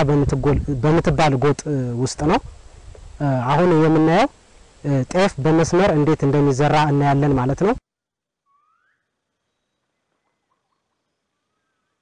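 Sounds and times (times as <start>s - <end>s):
rising bird whistle: 8.4s - 12.0s
thin bird chirps: 8.4s - 12.0s.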